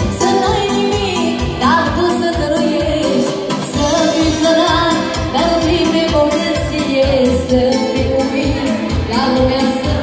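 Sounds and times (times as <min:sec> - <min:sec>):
keyboard accompaniment: 0:00.0 - 0:10.0
woman singing: 0:00.0 - 0:10.0.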